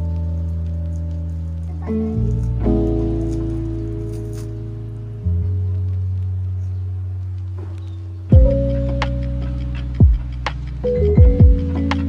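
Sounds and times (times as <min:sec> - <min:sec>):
slow sustained background music: 0:00.0 - 0:12.0.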